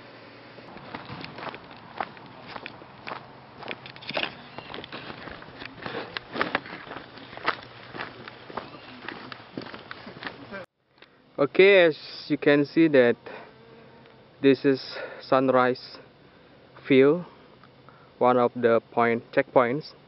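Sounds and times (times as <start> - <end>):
footsteps on dirt trail: 0.7 - 10.7.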